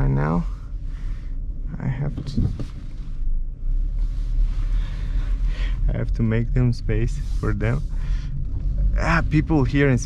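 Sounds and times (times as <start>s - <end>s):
car interior engine and road rumble: 0.0s - 10.0s.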